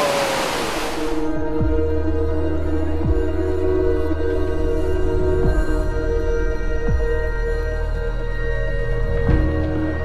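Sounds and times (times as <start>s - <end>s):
waterfall rushing water: 0.0s - 1.3s
ambient music with sustained tones: 0.0s - 10.0s.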